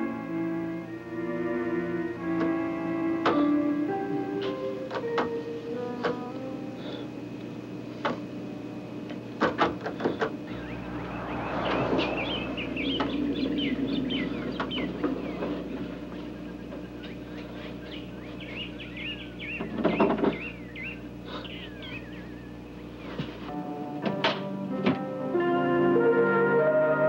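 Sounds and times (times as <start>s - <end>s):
steady low hum: 6.4s - 23.7s
birds chirping: 10.0s - 23.4s.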